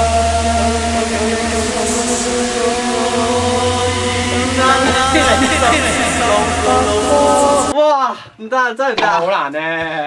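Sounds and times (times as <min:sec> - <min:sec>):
bass-heavy backing music: 0:00.0 - 0:07.8
man singing long notes: 0:00.0 - 0:07.8.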